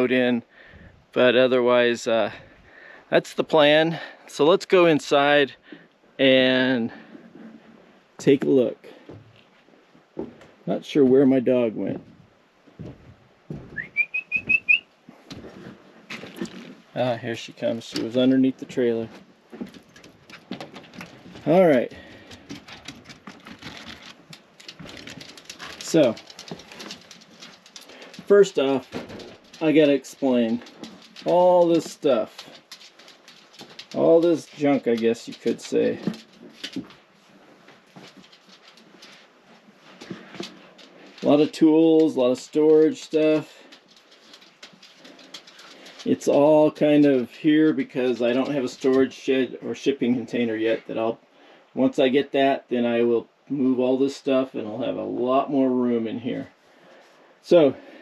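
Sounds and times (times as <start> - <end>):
person whistling for dog: 13.8 - 14.8.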